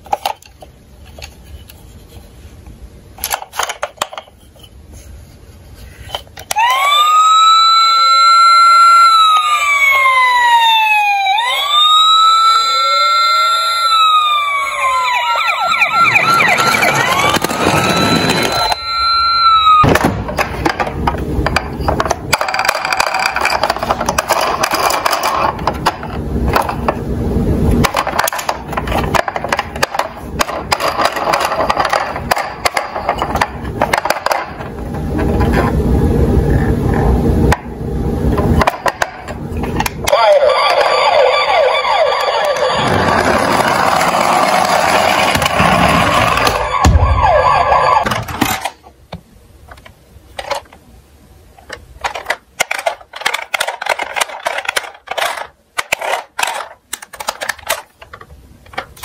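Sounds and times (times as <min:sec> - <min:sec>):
toy siren wailing: 0:06.5 - 0:19.9, 0:40.1 - 0:44.0, 0:44.7 - 0:48.2
rough irregular noise: 0:42.7 - 0:46.8.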